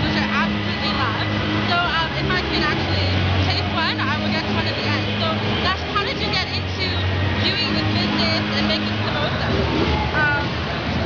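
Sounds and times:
woman talking: 0.0s - 9.6s, 10.2s - 10.5s
crowd chatter: 0.0s - 11.0s.

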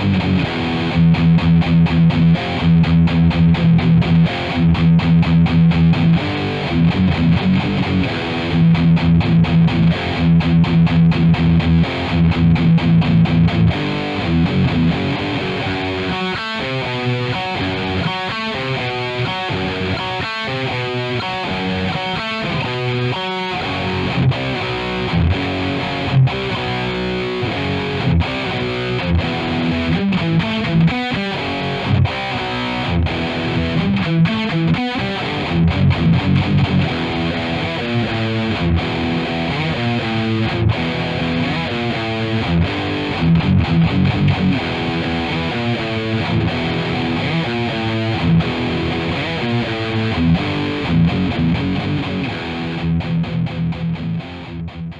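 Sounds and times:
distorted electric guitar riffs: 0.0s - 54.9s.

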